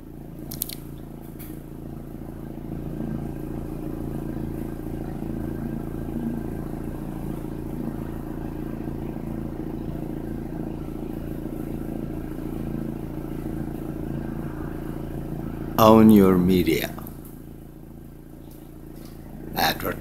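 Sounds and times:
low machine hum: 0:00.0 - 0:20.0.

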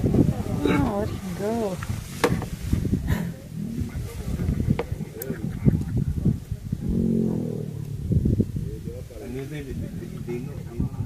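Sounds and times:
animal moaning: 0:03.1 - 0:05.1, 0:06.8 - 0:09.0
low rumbling knocks: 0:03.5 - 0:09.0.

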